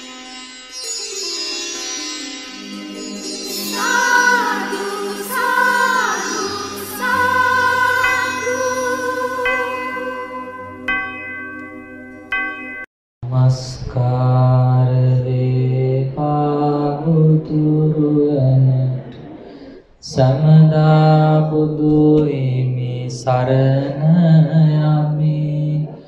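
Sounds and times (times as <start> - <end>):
bell-like ringing tone: 0.0 - 12.9
man chanting in long notes: 13.2 - 19.0.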